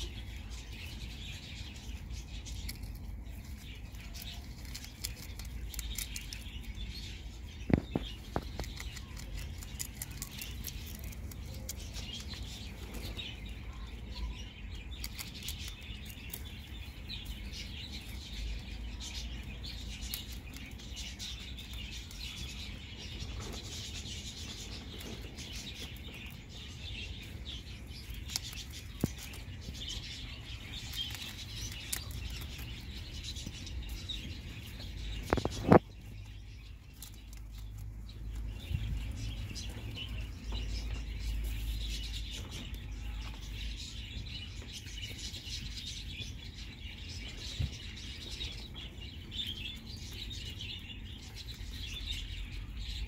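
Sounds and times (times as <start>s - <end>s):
rabbits chewing leaves: 0.0s - 53.0s
rabbits rustling in straw: 0.0s - 53.0s
small birds chirping: 0.0s - 53.0s.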